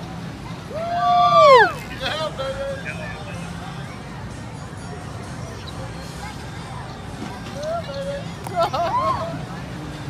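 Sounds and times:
person shouting a whoop: 0.7s - 1.8s.

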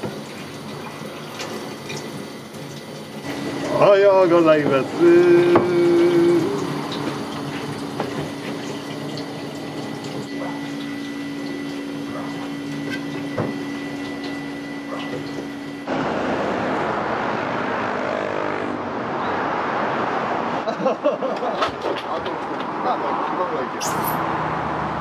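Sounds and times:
tap water running into sink: 0.0s - 15.7s
road traffic noise: 0.0s - 25.0s.

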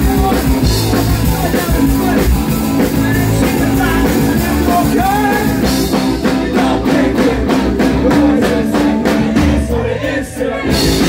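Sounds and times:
electric guitar: 0.0s - 9.9s
bass guitar: 0.0s - 11.0s
drum beat: 0.0s - 11.0s.

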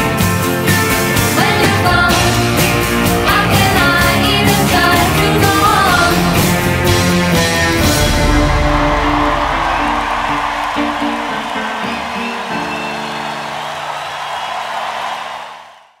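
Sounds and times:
crowd noise: 0.0s - 16.0s
pop song held chord: 0.8s - 12.9s.

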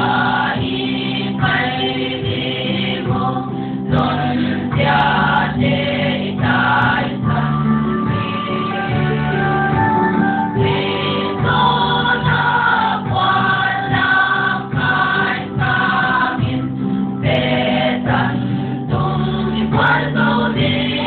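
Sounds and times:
choir singing: 0.0s - 9.5s, 10.6s - 21.0s
steady musical backing: 0.0s - 21.0s.

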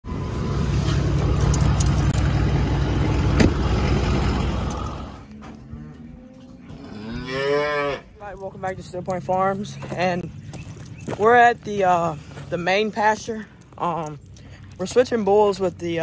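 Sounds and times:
calf mooing: 5.3s - 8.2s.

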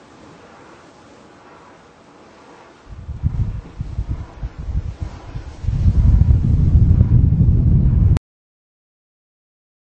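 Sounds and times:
wind buffeting microphone: 2.9s - 8.2s.

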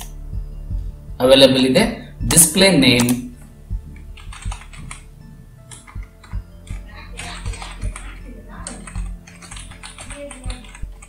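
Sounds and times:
computer keyboard typing: 4.0s - 5.1s, 5.7s - 11.0s.

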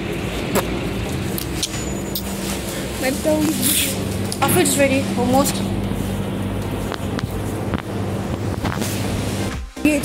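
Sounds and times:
phone microphone rumble and rustle: 0.0s - 9.8s.

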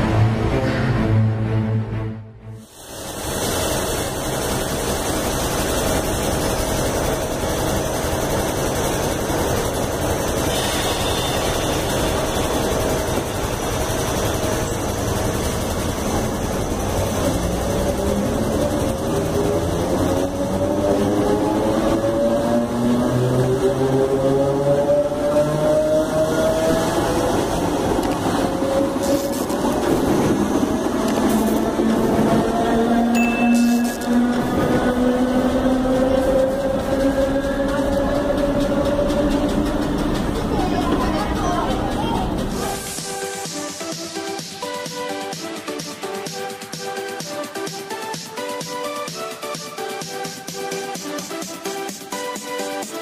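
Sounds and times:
train wheels rumbling on rails: 2.9s - 44.0s
traction motor whine rising: 9.0s - 40.6s.

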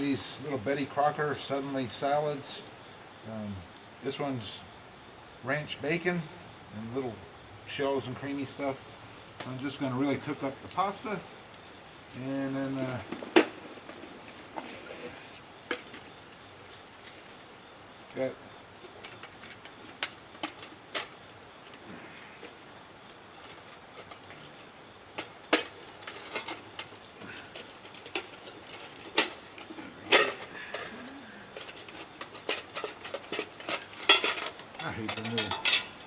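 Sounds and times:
faint high hiss: 0.0s - 36.0s
cookware clicks and knocks on rock: 27.6s - 30.9s, 31.5s - 36.0s.

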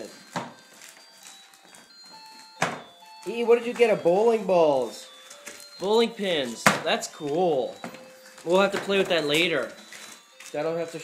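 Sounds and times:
wrapping paper rustling and tearing: 0.2s - 2.6s.

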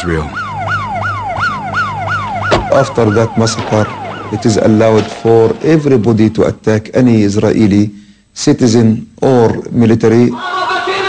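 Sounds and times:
siren in fast yelp: 0.0s - 5.2s
thump: 2.5s - 2.8s.

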